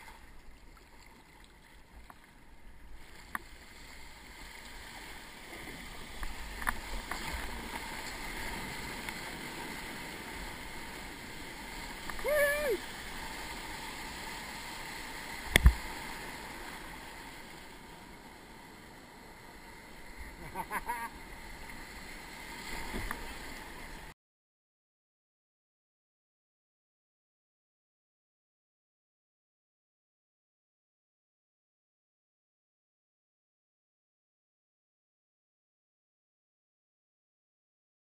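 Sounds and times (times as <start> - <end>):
surf churning around a kayak: 0.0 - 24.2
person shouting: 12.2 - 12.8.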